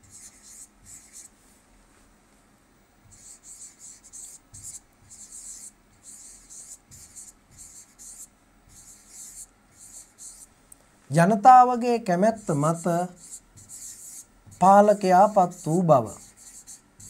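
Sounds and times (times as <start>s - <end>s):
marker scratching on board: 0.0s - 1.3s, 3.0s - 10.5s, 12.3s - 17.0s.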